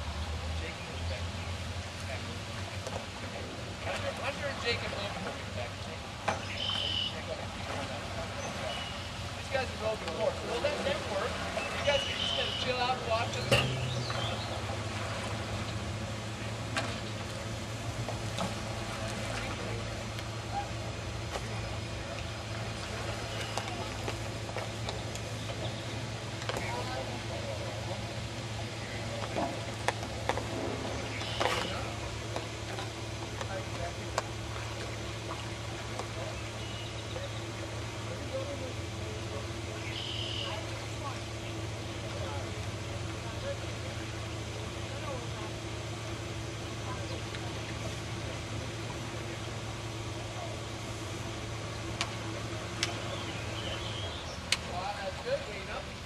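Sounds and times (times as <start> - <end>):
faint voices: 0.0 - 56.0
low hum: 0.0 - 56.0.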